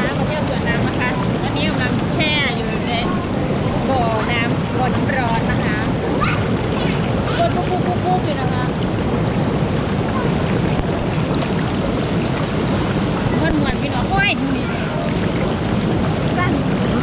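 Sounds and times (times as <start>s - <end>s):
bubbling water rushing: 0.0s - 17.0s.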